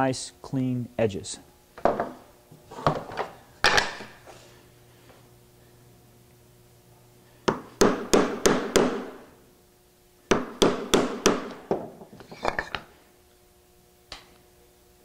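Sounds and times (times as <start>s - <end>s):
mallet striking chisel: 7.5s - 9.2s, 10.3s - 11.6s.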